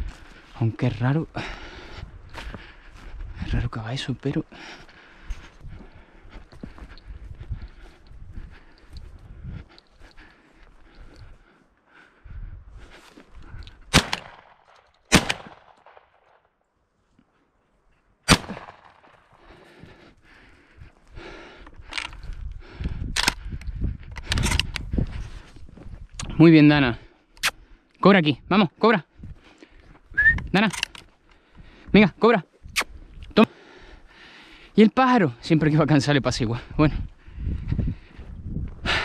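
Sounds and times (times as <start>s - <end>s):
footsteps through dry scrub: 0.0s - 11.9s, 12.6s - 13.9s, 23.4s - 26.5s
shotgun shots: 13.9s - 16.2s, 18.3s - 19.2s.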